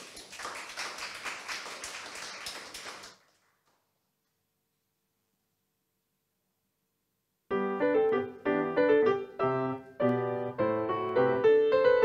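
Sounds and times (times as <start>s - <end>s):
audience clapping: 0.0s - 3.9s.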